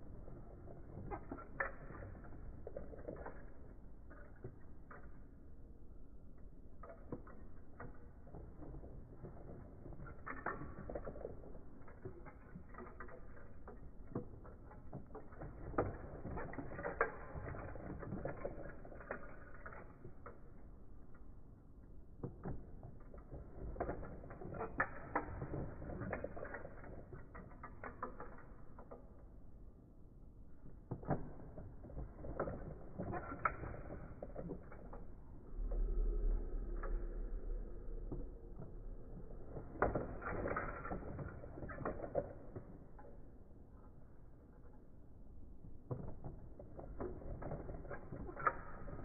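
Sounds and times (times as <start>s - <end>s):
plastic toy clicks and creaks: 0.1s - 49.0s.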